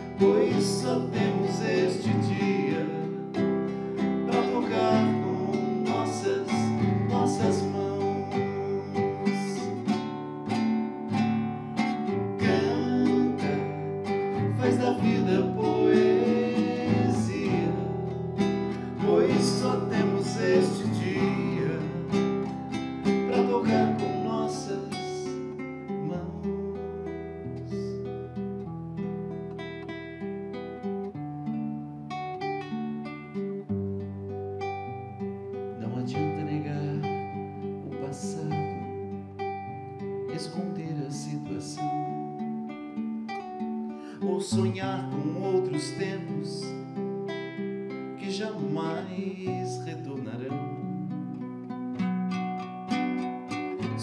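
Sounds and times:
classical guitar strumming chords: 0:00.0 - 0:54.0.

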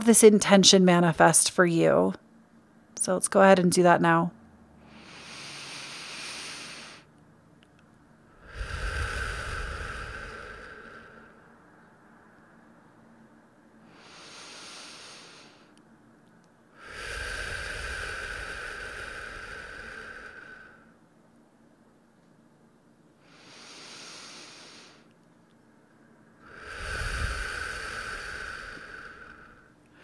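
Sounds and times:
woman breathing deeply: 0:04.8 - 0:07.1, 0:08.3 - 0:11.7, 0:13.8 - 0:15.8, 0:16.7 - 0:21.0, 0:23.2 - 0:25.1, 0:26.4 - 0:30.0.

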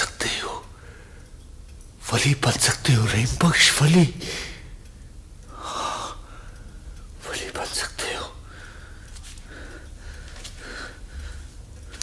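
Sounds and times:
person gasping breaths: 0:08.5 - 0:12.0.

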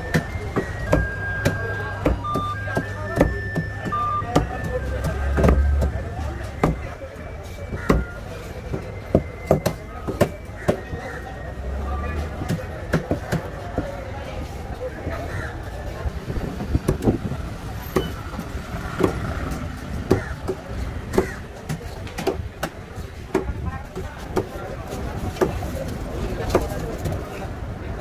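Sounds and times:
chatter of voices: 0:00.0 - 0:28.0.

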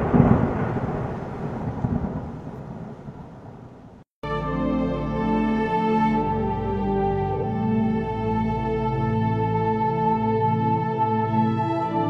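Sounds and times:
loud rumbling boom: 0:00.0 - 0:04.0.

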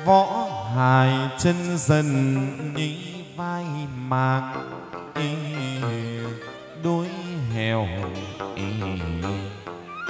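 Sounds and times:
instrumental accompaniment: 0:00.0 - 0:10.0
person chanting long notes: 0:00.0 - 0:10.0.

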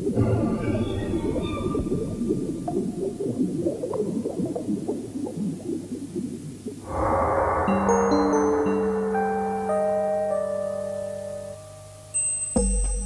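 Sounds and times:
low rumbling texture: 0:06.8 - 0:10.6
music with held notes: 0:07.3 - 0:13.0.

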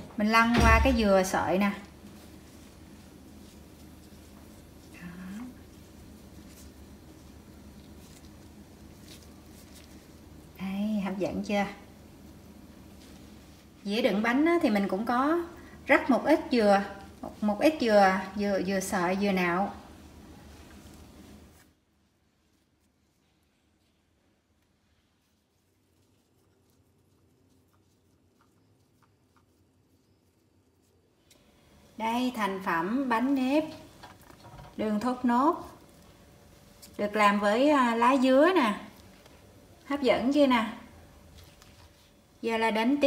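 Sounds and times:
soft rustles and scratches: 0:00.0 - 0:43.0.

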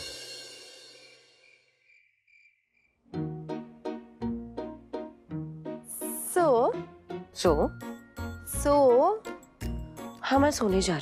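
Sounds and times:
crickets chirping: 0:01.0 - 0:03.0.

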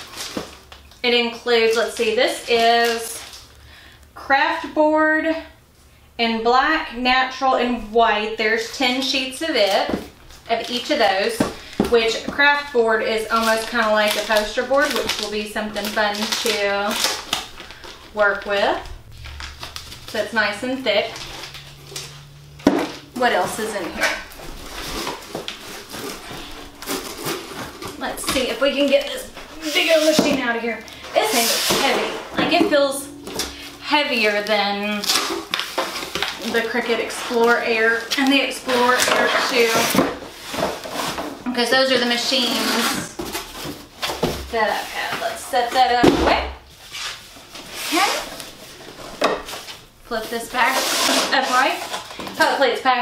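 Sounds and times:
plastic-wrapped boards handled: 0:00.0 - 0:03.5, 0:09.6 - 0:33.5, 0:34.2 - 0:52.9
cardboard box scraping on table: 0:19.7 - 0:30.5, 0:38.7 - 0:41.4, 0:50.5 - 0:52.1.

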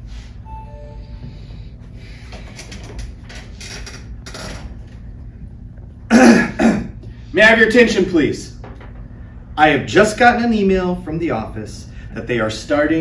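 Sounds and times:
person clearing throat: 0:06.1 - 0:07.0.

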